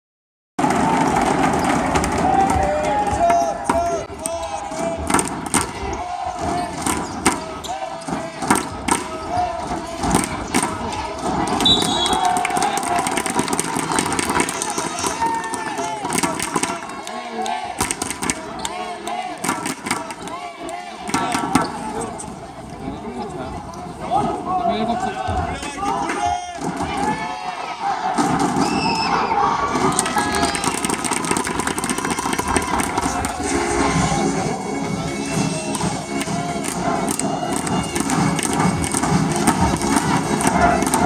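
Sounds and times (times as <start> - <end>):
gym crowd hubbub: 0.6 - 41.0.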